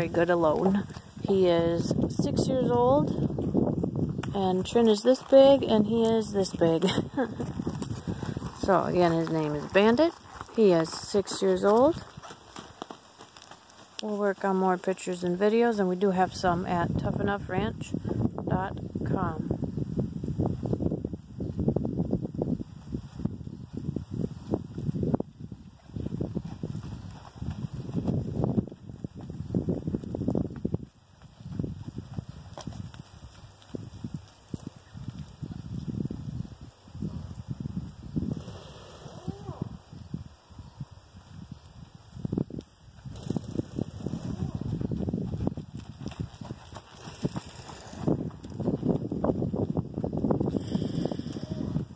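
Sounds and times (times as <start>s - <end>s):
wind buffeting microphone: 0.0s - 13.5s, 15.4s - 51.9s
pony hooves trotting on dirt: 0.0s - 40.4s, 41.0s - 51.9s.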